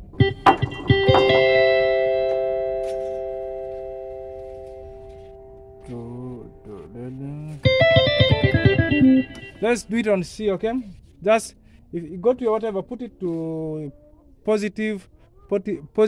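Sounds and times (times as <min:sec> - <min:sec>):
keyboard repeated notes: 0:00.1 - 0:09.8
keyboard chord held: 0:00.2 - 0:09.7.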